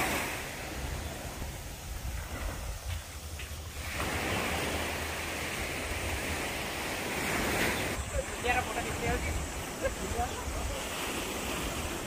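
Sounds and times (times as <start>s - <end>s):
small waves washing on rocks: 0.0s - 12.0s
wind rumbling on microphone: 0.0s - 12.0s.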